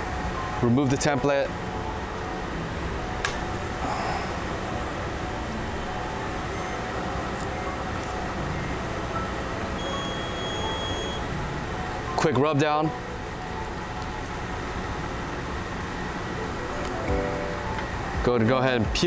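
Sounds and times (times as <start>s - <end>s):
room and air noise hum: 0.0s - 19.0s.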